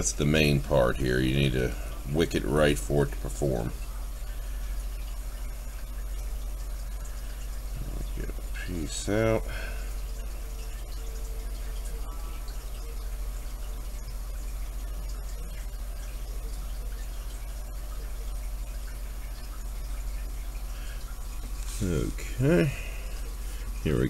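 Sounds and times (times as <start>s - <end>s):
low background hum: 0.0s - 24.0s.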